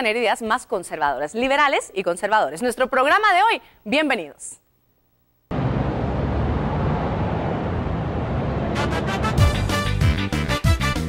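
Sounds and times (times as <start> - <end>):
steady rushing noise: 5.5 - 9.6
low rumble: 5.5 - 9.7.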